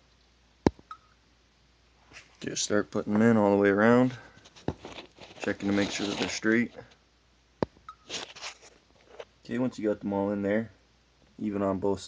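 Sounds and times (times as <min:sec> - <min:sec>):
soft handling rustles: 0:02.0 - 0:07.0, 0:08.0 - 0:09.4.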